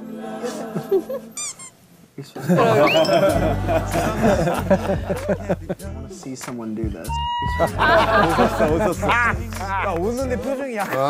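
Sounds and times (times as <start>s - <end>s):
cartoon squeaky chirps: 1.4s - 1.8s.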